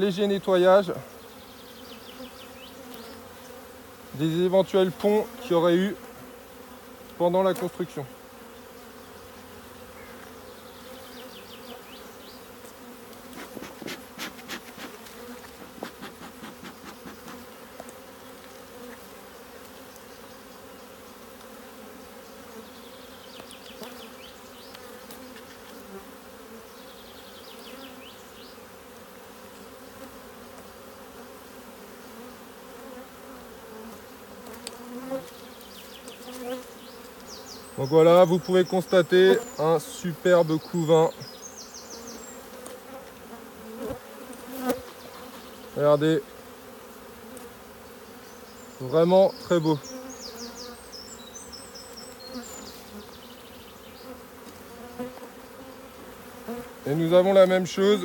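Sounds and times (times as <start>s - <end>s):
honeybees humming: 0.0s - 58.0s
hive tool scraping wooden frames: 1.8s - 22.2s, 23.4s - 26.6s, 29.7s - 53.2s, 54.0s - 58.0s.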